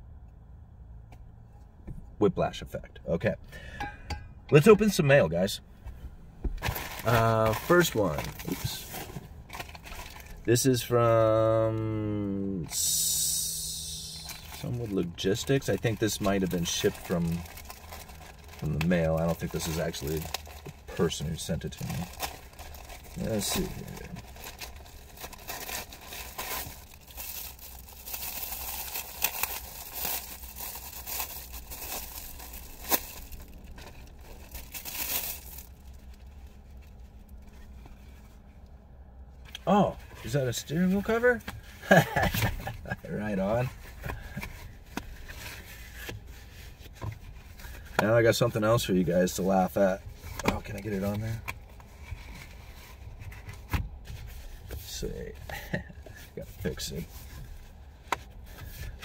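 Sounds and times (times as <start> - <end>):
packaging tearing and rustling: 6.6 - 10.4, 13.9 - 36.4.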